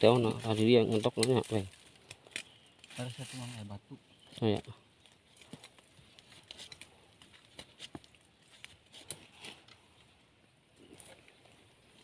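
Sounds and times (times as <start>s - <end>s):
hands scraping in soil and stones: 0.0s - 10.1s.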